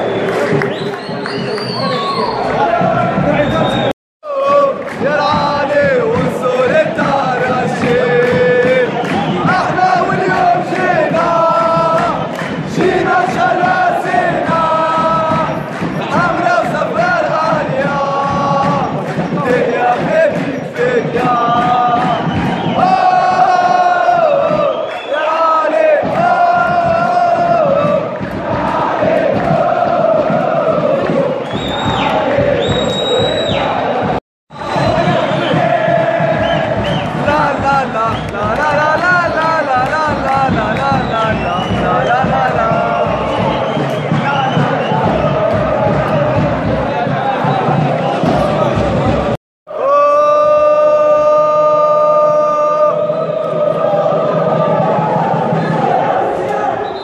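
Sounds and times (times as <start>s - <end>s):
crowd of men chanting: 0.0s - 57.0s.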